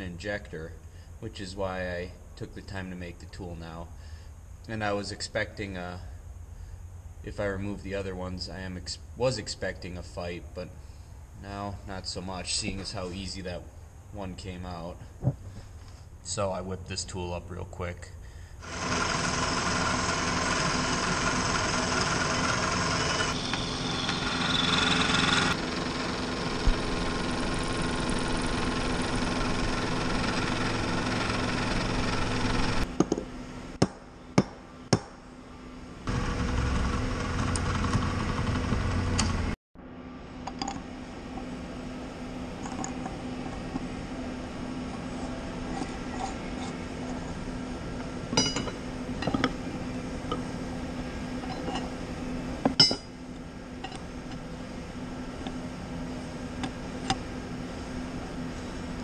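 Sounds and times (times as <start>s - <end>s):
shop hum: 0.0s - 59.0s
milling machine cutting steel: 18.6s - 32.9s.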